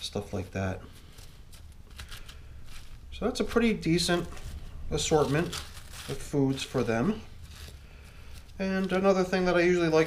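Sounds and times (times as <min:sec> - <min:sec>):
rustling and crackling of scraps: 0:00.0 - 0:10.0.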